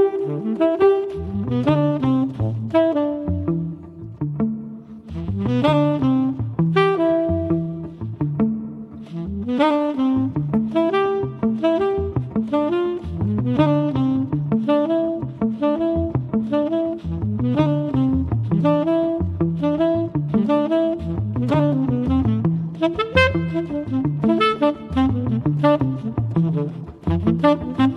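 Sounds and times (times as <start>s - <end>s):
jazz band with tenor saxophone: 0.0s - 27.9s.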